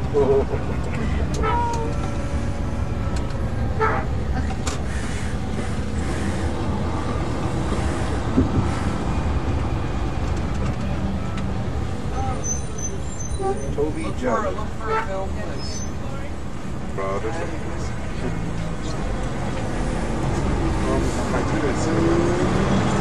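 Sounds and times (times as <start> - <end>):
bus engine rumble: 0.0 - 23.0
passenger voices: 0.0 - 23.0.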